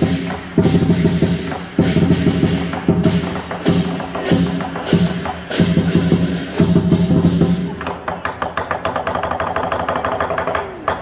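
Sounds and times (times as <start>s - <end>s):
drum roll: 0.0s - 11.0s.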